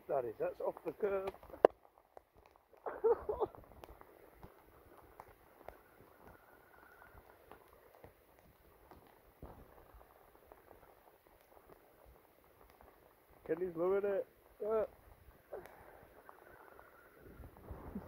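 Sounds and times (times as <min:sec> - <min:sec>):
rain falling on water: 0:00.0 - 0:18.0.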